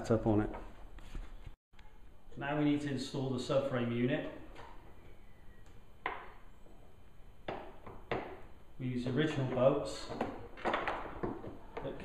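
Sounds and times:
sharp knocks against bike frame: 7.4s - 8.5s.

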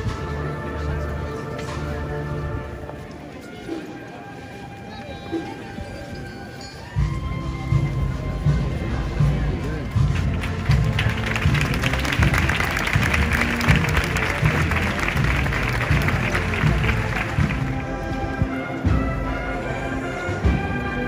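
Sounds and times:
processional band playing: 0.0s - 4.5s, 6.9s - 21.0s
heavy drum beats: 7.1s - 19.4s
crowd applauding: 10.2s - 18.1s.

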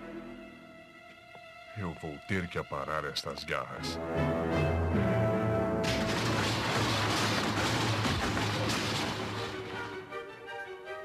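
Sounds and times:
background score music: 0.0s - 11.0s
metal trash cans crashing: 5.8s - 10.1s.

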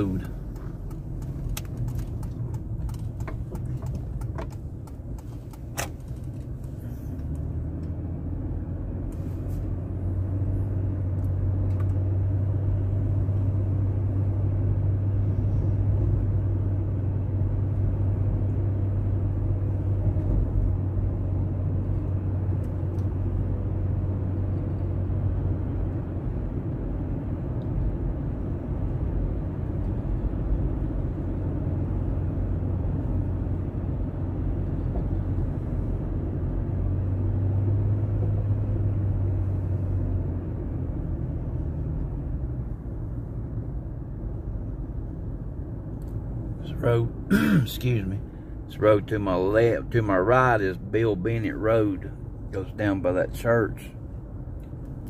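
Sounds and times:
car engine and tyre rumble: 0.0s - 55.0s.

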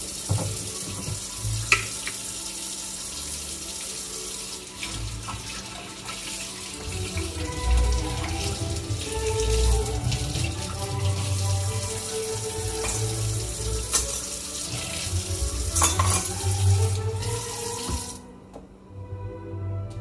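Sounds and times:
tap running into sink: 0.2s - 2.2s, 15.6s - 18.2s.

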